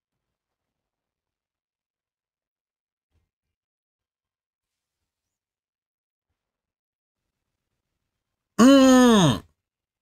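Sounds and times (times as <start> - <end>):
man groaning: 8.6 - 9.4.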